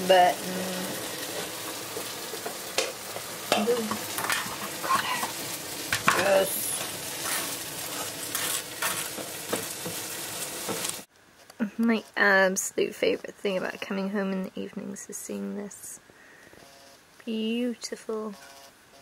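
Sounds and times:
food sizzling in a pan: 0.0s - 11.1s.

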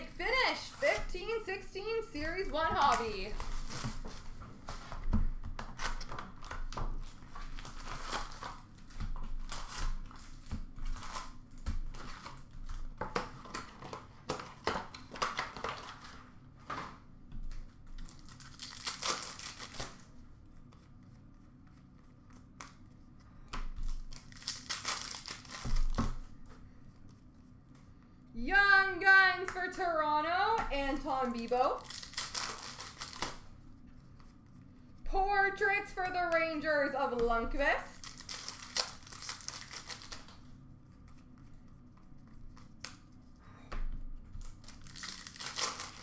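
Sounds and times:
foil wrappers crinkling: 0.1s - 5.0s, 5.6s - 16.3s, 17.5s - 21.0s, 23.8s - 26.4s, 30.8s - 34.4s, 37.4s - 41.4s, 44.4s - 46.0s
foil packs tearing: 5.7s - 12.8s, 18.1s - 20.0s, 23.9s - 26.0s, 31.2s - 33.4s, 37.9s - 40.4s, 44.4s - 46.0s.

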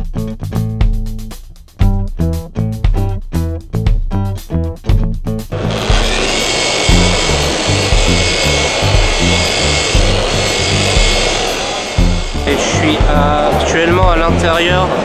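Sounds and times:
music with pulsing bass beat: 0.0s - 15.0s
polisher whining: 5.5s - 15.0s.

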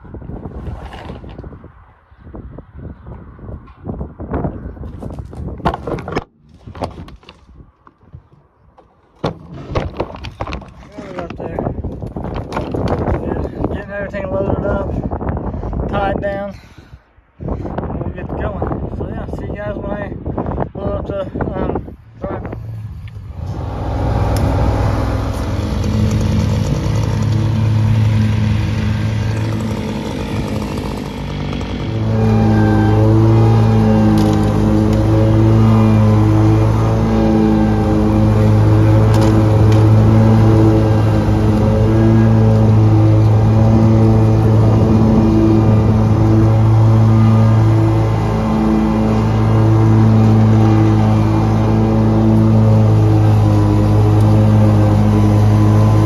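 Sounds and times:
tractor engine running: 22.1s - 56.0s.

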